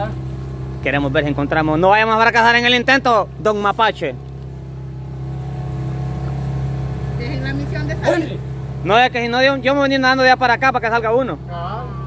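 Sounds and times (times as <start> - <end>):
motorboat engine droning: 0.0 - 12.0.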